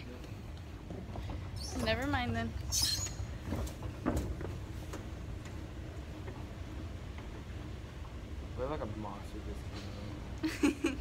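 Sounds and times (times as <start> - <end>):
low indoor rumble: 0.0 - 11.0.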